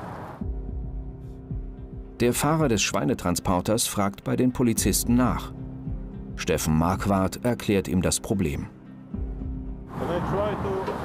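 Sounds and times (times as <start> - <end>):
passing motorway traffic hum: 0.0 - 0.4, 9.9 - 11.0
background music with low tones: 0.4 - 11.0
man talking: 10.0 - 11.0.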